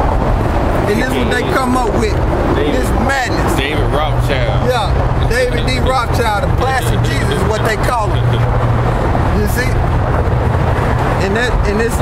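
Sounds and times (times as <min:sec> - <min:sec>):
low hum of street traffic: 0:00.0 - 0:12.0
men talking: 0:00.8 - 0:10.0, 0:11.0 - 0:12.0.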